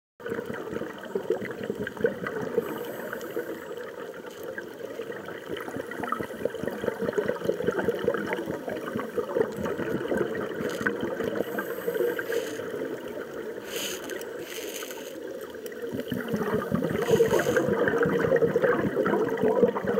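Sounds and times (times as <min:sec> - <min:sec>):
dense underwater crackle of clicks: 0:00.2 - 0:19.9.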